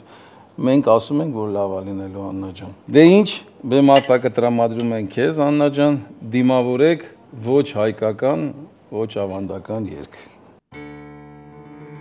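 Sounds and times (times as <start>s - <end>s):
man talking: 0.6s - 10.4s
tableware clink: 3.9s - 5.0s.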